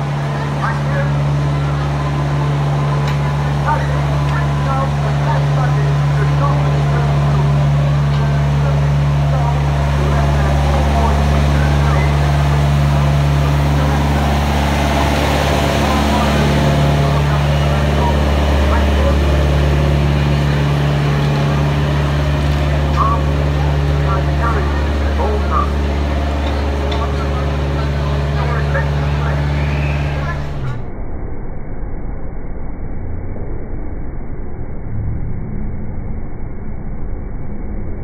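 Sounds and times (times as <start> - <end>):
people chatting: 0.0 - 30.9
diesel engine idling: 0.0 - 31.0.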